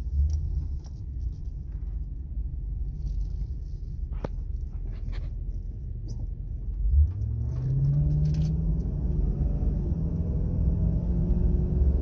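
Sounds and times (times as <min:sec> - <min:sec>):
car engine accelerating: 0:06.7 - 0:12.0.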